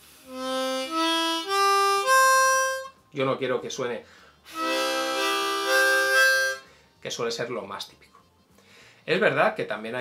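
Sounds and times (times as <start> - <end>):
harmonica chord: 0.0 - 3.1, 4.1 - 7.0.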